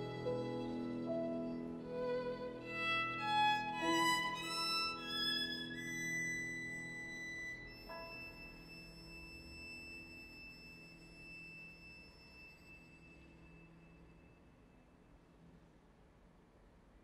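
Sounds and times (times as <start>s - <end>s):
violin bowed note: 0.0s - 14.0s.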